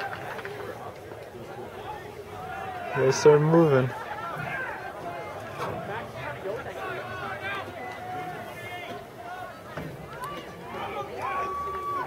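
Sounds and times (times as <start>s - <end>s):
distant crowd chatter: 0.0s - 12.0s.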